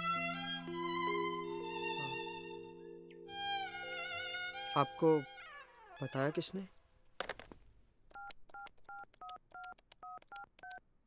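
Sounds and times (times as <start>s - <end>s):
keypad dialling beeps: 8.2s - 10.8s.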